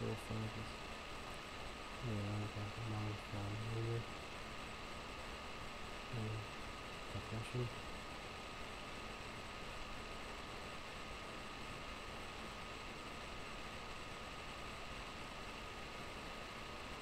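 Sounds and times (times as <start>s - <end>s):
faint thin whine: 0.0s - 17.0s
steady background hiss: 0.0s - 17.0s.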